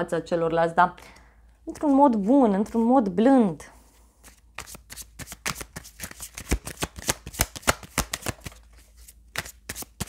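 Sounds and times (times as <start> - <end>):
cards being shuffled: 1.7 - 3.2, 4.2 - 10.0.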